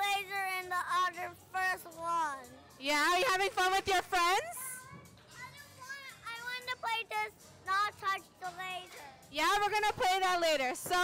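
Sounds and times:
background music: 0.0 - 11.0
children playing: 4.6 - 9.1
young child answering quietly: 4.8 - 9.2.

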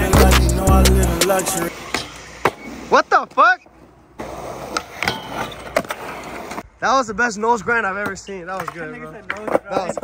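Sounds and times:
skateboard wheels rolling on concrete: 0.0 - 10.0
skateboard clacks: 8.0 - 10.0.

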